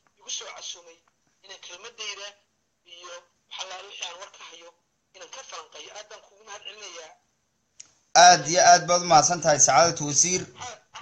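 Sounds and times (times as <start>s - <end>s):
person speaking: 7.8s - 11.0s.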